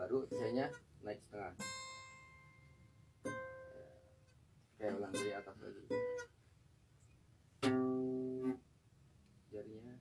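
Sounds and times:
acoustic guitar note plucked: 1.6 - 4.2, 4.9 - 6.3, 7.6 - 8.6.

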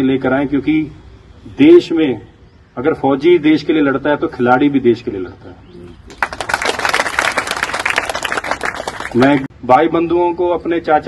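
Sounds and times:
audience applauding: 6.1 - 9.4.

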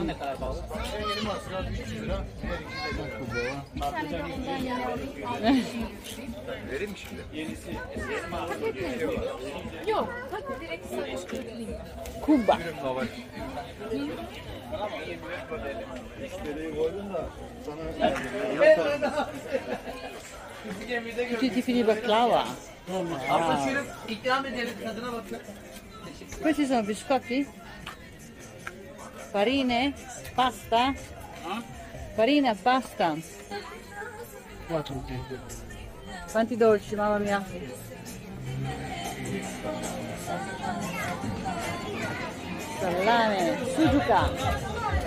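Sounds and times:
indistinct chatter of people: 0.0 - 45.0.

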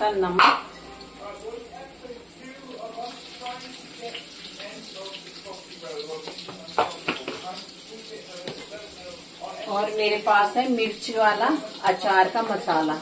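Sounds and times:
greens sizzling in pan: 0.0 - 13.0.

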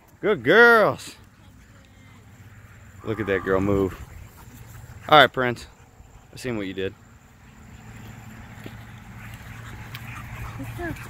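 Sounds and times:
faint dog sounds: 3.0 - 11.0.

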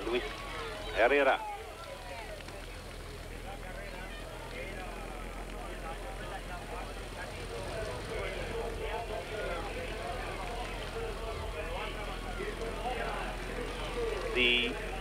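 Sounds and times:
indistinct voices talking: 0.0 - 15.0
low steady engine drone: 0.0 - 15.0.

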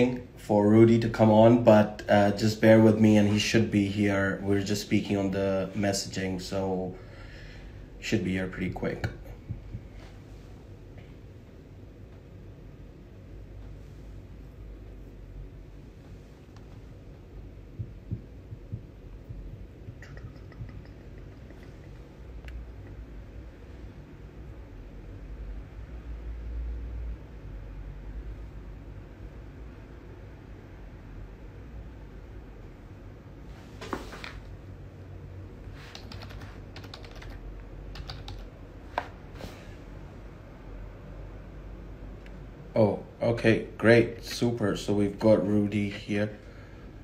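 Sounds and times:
steady low rumble: 0.0 - 26.4
low steady hum: 0.0 - 47.0
soft low thumps: 9.3 - 10.0, 16.6 - 22.0
keyboard typing: 35.9 - 38.5.

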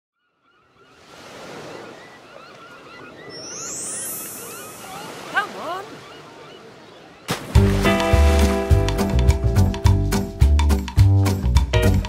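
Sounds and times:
bird chirps: 0.2 - 7.3
surf washing on shore: 3.3 - 9.2.

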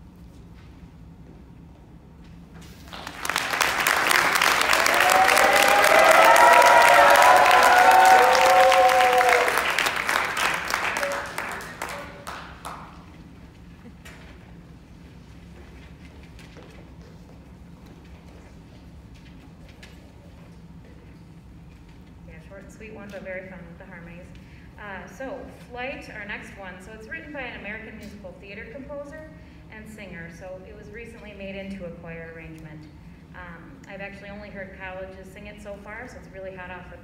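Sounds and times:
audience applauding: 2.8 - 13.1
whoops and cheers: 4.6 - 9.8.

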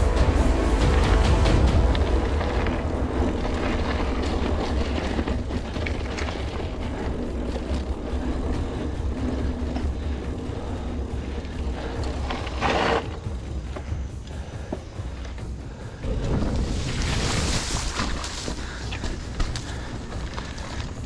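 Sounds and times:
bike pushing through reeds: 0.0 - 21.0
bike tyres rolling on dirt: 0.0 - 21.0.

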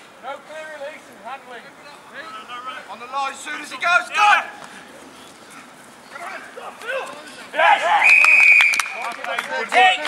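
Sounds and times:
men shouting: 3.0 - 4.6
referee's whistle blast: 8.0 - 9.0.

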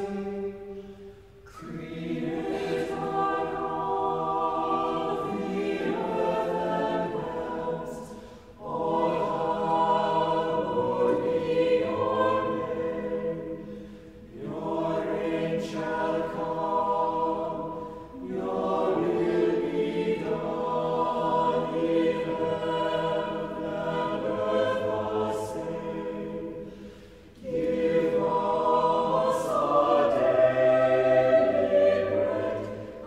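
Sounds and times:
church choir singing: 0.0 - 33.0
singers breathing: 8.0 - 8.6, 13.5 - 14.3, 17.7 - 18.2, 26.5 - 27.4.

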